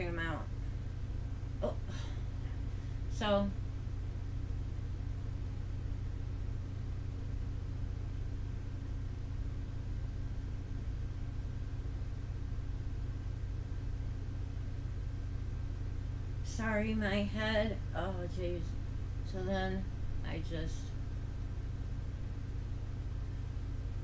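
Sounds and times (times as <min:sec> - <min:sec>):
low hum with hiss: 0:00.0 - 0:24.0.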